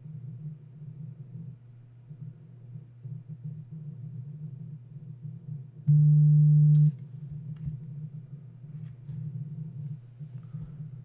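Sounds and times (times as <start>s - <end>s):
low steady hum: 0.0s - 11.0s
loud low-pitched tone: 5.9s - 8.1s.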